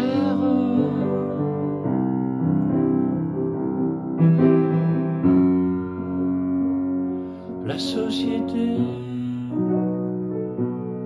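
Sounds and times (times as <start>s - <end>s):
person singing: 0.0s - 1.8s, 7.6s - 9.8s
keyboard playing piano chords: 0.0s - 11.0s.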